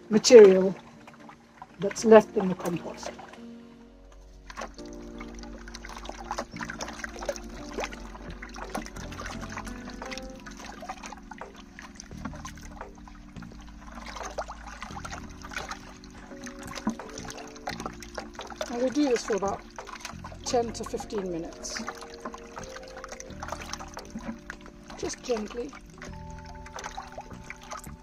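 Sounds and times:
slurry sloshing in a bucket: 0:00.0 - 0:03.6, 0:04.2 - 0:28.0
soft background music: 0:00.0 - 0:28.0.

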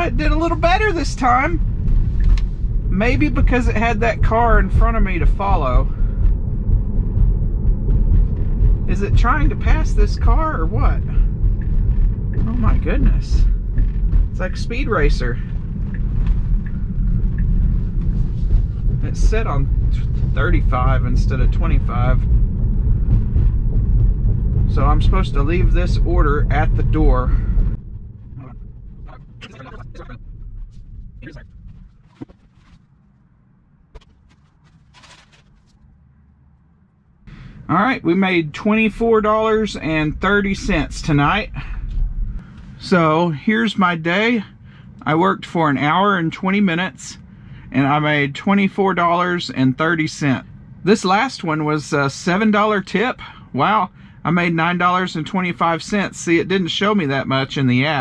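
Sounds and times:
tyre and road noise in car: 0:00.0 - 0:43.0
low steady hum: 0:00.0 - 0:58.0
short rustle: 0:30.6 - 0:33.0, 0:34.0 - 0:35.8.

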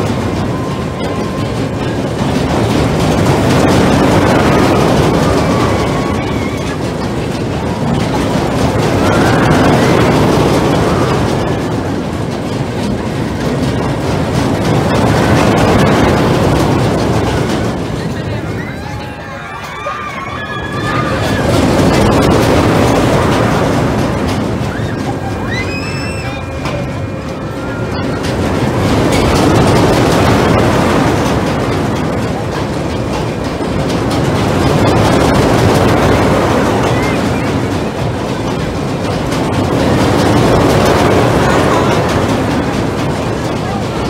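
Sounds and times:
roller coaster wheels rumbling on rail: 0:00.0 - 0:44.0.

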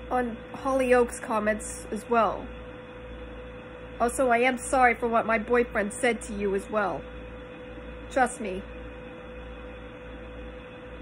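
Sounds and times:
steady tonal hum: 0:00.0 - 0:11.0.

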